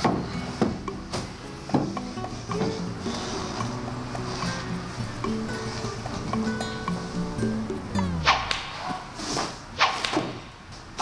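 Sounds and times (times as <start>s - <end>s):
background music: 0.0s - 9.2s
whip cracks: 8.2s - 9.0s, 9.8s - 10.5s.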